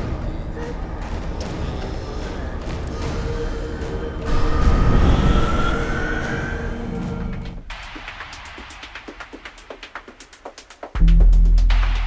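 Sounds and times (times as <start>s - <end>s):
tense film music: 0.0s - 12.0s.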